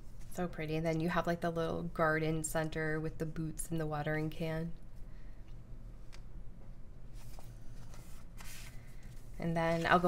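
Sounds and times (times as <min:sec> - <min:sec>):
paper sticker sheets rustling: 0:07.2 - 0:10.0.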